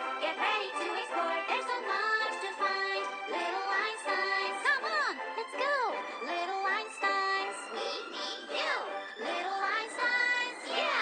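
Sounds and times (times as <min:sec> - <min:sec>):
tinny cartoon theme song: 0:00.0 - 0:11.0.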